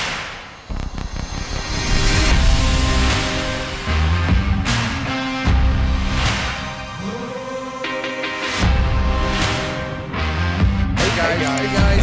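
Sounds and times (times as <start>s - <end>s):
sharp impact hit: 0.0s - 6.6s
intro music: 0.5s - 12.0s.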